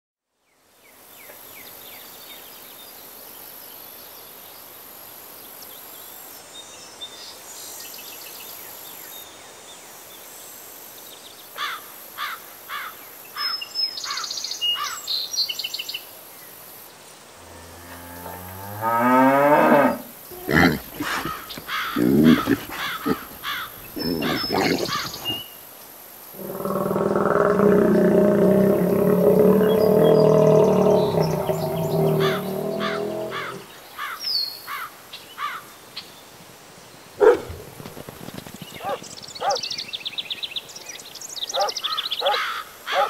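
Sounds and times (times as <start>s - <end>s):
cow mooing: 17.4s - 25.4s, 26.4s - 33.6s.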